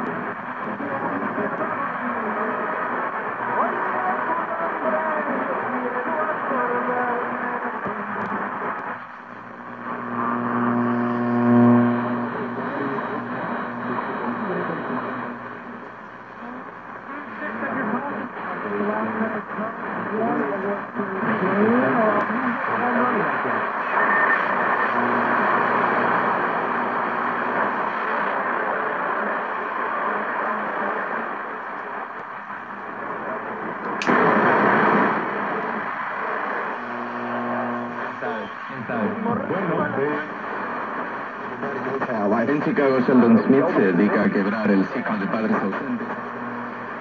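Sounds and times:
radio static hiss: 0:00.0 - 0:47.0
garbled radio voices: 0:00.1 - 0:47.0
wavering radio whistles: 0:23.3 - 0:30.1, 0:35.6 - 0:39.2
sharp click: 0:33.8 - 0:34.2.

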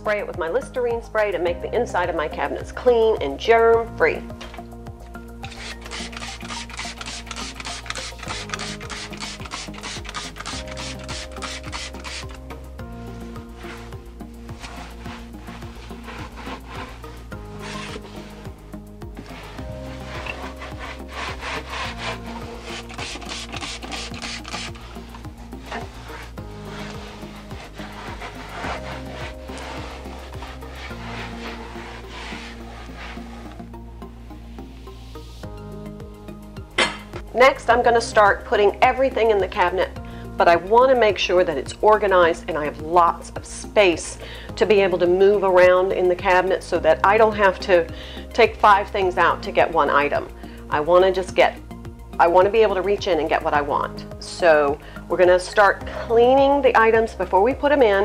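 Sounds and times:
background music: 0:00.0 - 0:58.0
cloth wiping cabinet: 0:05.4 - 0:35.3.

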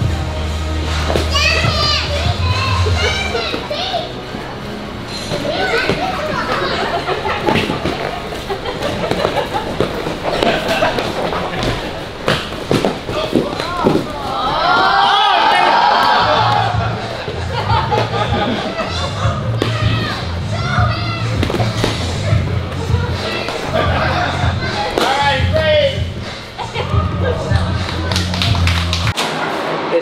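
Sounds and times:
children shouting and chattering: 0:01.0 - 0:28.5.

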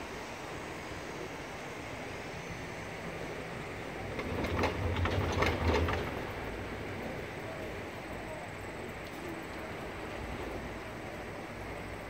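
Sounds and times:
cable lift rushing noise: 0:03.0 - 0:08.2
rapid clatter over tower wheels: 0:04.0 - 0:06.9.

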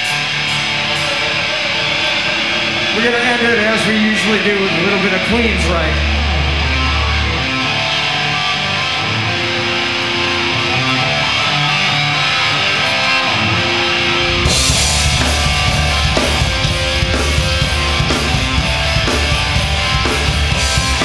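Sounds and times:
bass guitar: 0:00.0 - 0:21.0
electric guitar riff: 0:00.0 - 0:21.0
drums with cymbals: 0:14.3 - 0:21.0.

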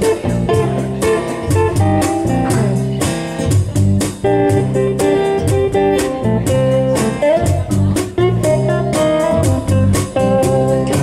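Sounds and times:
bass line: 0:00.0 - 0:11.0
bluesy guitar groove: 0:00.0 - 0:11.0
drum beat: 0:00.0 - 0:11.0.

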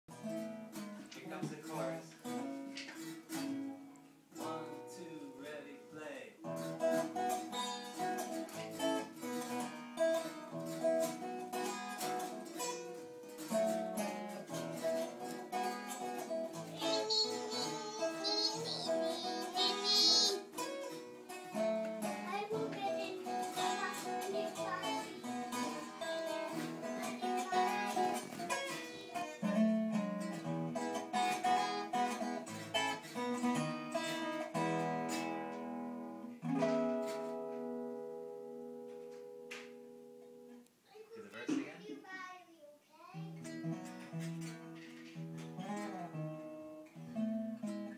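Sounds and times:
acoustic guitar: 0:00.1 - 0:47.9
child singing: 0:16.5 - 0:20.6, 0:22.0 - 0:29.5, 0:30.9 - 0:32.5.

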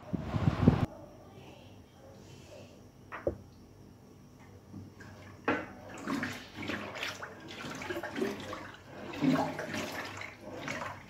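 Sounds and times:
paddle stirring liquid in a pot: 0:05.0 - 0:11.0.

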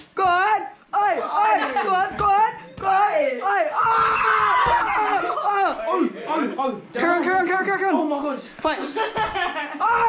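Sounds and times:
young people shouting: 0:00.3 - 0:06.2.

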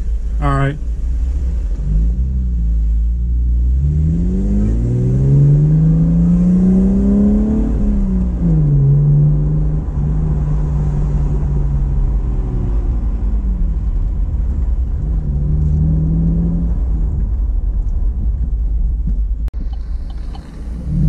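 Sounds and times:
car engine accelerating: 0:00.0 - 0:21.0.

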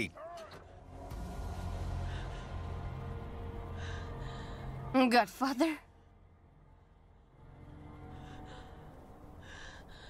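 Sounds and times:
film-score music drone: 0:00.3 - 0:10.0.

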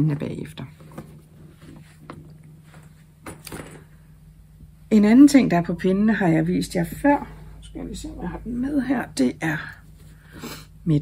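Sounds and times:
rustles and knocks of handling: 0:00.0 - 0:04.0
low steady hum: 0:00.0 - 0:11.0.

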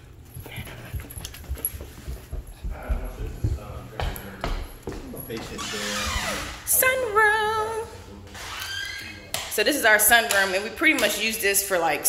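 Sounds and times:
footsteps on carpeted stairs: 0:00.0 - 0:06.2.

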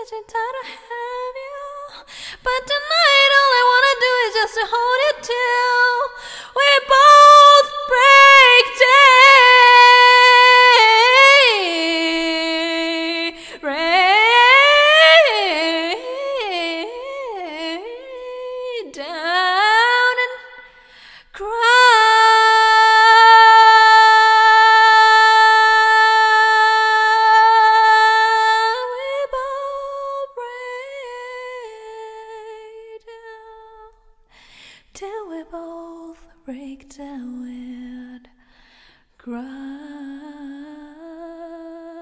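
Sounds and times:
woman singing a cappella: 0:00.0 - 0:42.0.

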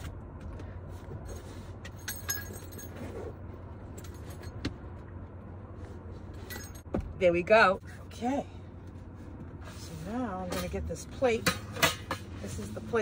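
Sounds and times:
small metallic clinks: 0:02.0 - 0:03.1.

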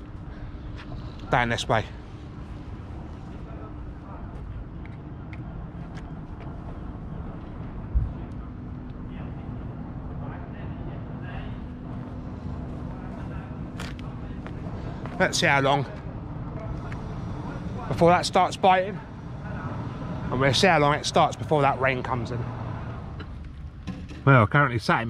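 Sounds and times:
low engine drone: 0:00.0 - 0:24.3.

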